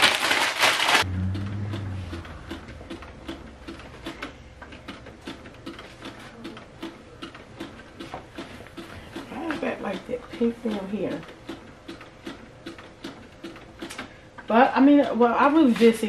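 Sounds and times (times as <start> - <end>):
paper and fabric rustling: 0.0 - 1.1.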